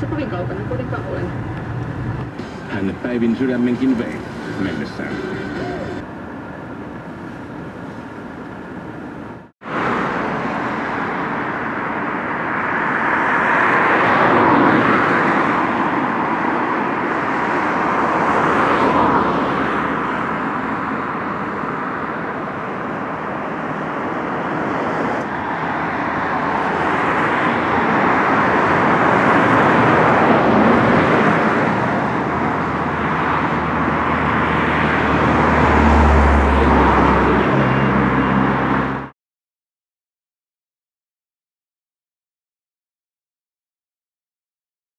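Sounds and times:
road traffic passing: 0:00.0 - 0:39.2.

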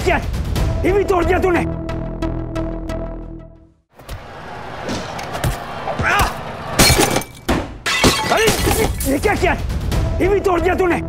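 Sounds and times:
glass shattering crash: 0:06.8 - 0:09.1.

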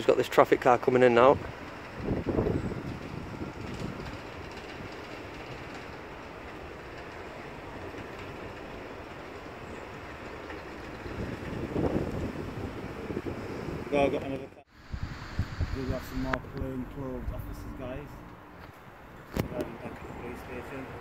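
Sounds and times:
car driving slowly: 0:00.0 - 0:21.0
rumble of vehicle traffic: 0:00.0 - 0:21.0
wind on microphone: 0:01.4 - 0:06.1, 0:10.8 - 0:17.8.

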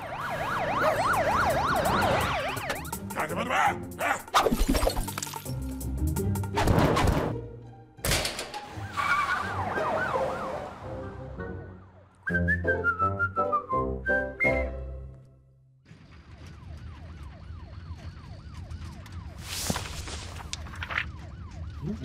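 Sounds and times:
siren wailing: 0:00.0 - 0:03.2, 0:08.9 - 0:12.0, 0:16.1 - 0:22.0.

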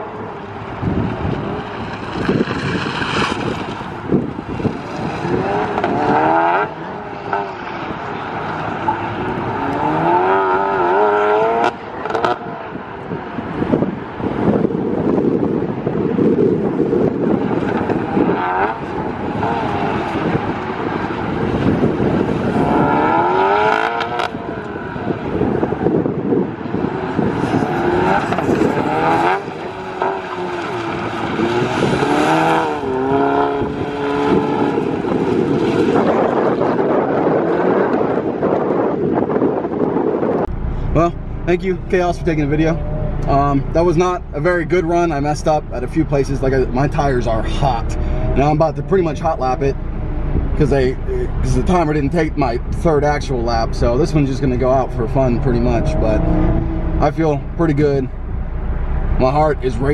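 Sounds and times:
car engine revving hard: 0:04.7 - 0:12.5, 0:16.6 - 0:38.3, 0:46.5 - 0:58.0.

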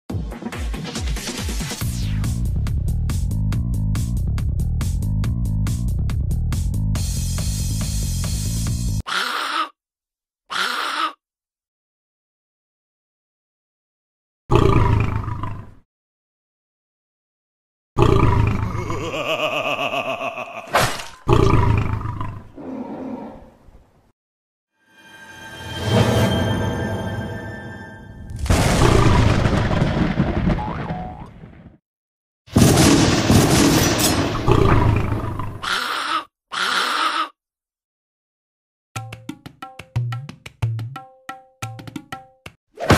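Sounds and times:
background music with bass guitar: 0:02.2 - 0:09.0
explosion booms and rumbles: 0:28.3 - 0:31.8, 0:32.5 - 0:35.3.

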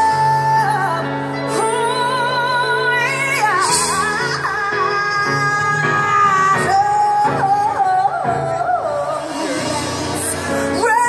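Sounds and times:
band playing: 0:00.0 - 0:11.0
woman singing: 0:00.0 - 0:11.0.

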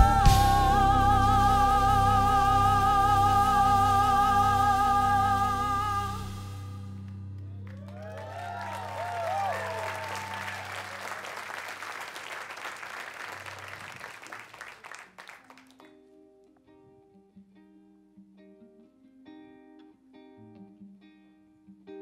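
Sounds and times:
guitar picking single notes: 0:00.0 - 0:08.1
audience applauding and cheering: 0:07.1 - 0:15.9
whoops: 0:07.4 - 0:14.5.

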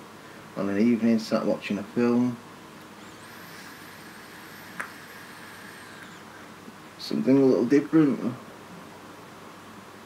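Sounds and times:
thin high whine: 0:02.8 - 0:08.4
e-cigarette drag hiss: 0:03.0 - 0:06.6.

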